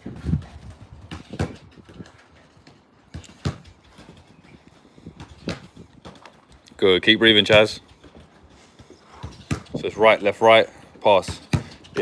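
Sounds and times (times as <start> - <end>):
football kicked against a wall: 1.1 - 1.7.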